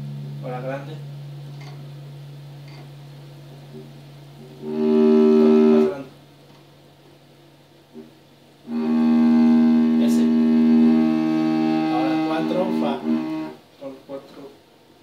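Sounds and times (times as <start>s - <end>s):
bowed cello notes: 4.4s - 6.2s, 8.7s - 13.6s.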